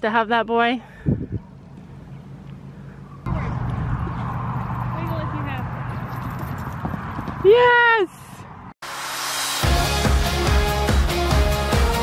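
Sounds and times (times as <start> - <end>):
pony hoofbeats on sand: 5.7 - 7.8
background music with steady beat: 8.8 - 12.0.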